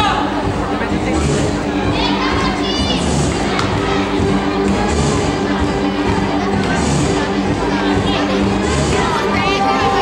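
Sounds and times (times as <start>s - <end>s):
crowd chatter: 0.0s - 10.0s
children's high voices: 1.8s - 4.5s, 6.0s - 10.0s
tango music over sound system: 2.9s - 10.0s.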